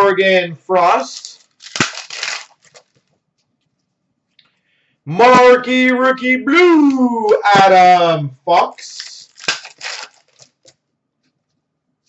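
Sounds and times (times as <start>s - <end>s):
cards flicking and rustling: 1.1s - 3.1s, 8.9s - 10.8s.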